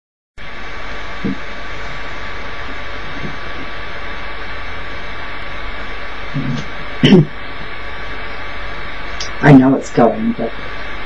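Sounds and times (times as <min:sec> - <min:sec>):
electronic hiss with high whine: 0:00.4 - 0:11.0.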